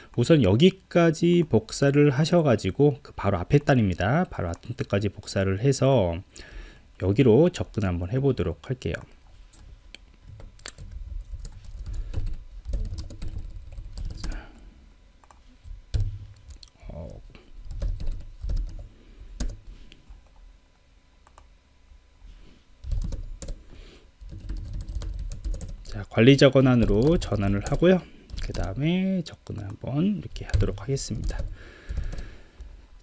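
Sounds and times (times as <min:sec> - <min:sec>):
keyboard typing: 0:10.5 - 0:14.4, 0:17.7 - 0:19.6, 0:22.8 - 0:23.6, 0:24.2 - 0:26.0, 0:26.8 - 0:28.8, 0:30.5 - 0:32.3.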